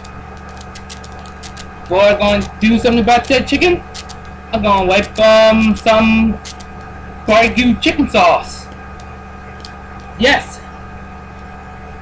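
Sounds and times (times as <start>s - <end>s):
steady tonal hum: 0.0s - 12.0s.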